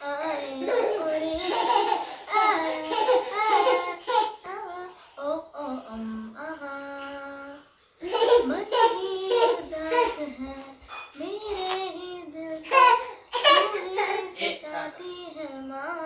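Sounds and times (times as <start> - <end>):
young girl singing unaccompanied: 0.0 - 16.0.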